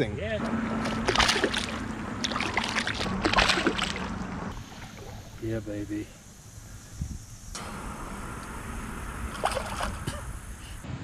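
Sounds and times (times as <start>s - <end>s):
moving water: 0.4s - 6.5s, 9.1s - 10.8s
hand splashing in stream: 0.8s - 5.4s.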